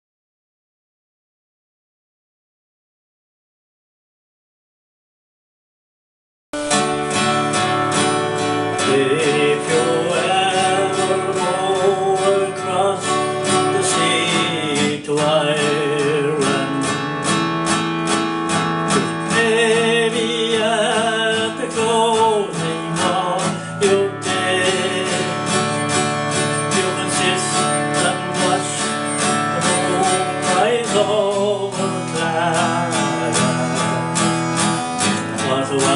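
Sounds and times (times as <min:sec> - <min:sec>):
acoustic guitar picking and strumming: 0:06.6 - 0:35.9
sustained melody with vibrato: 0:22.8 - 0:34.9.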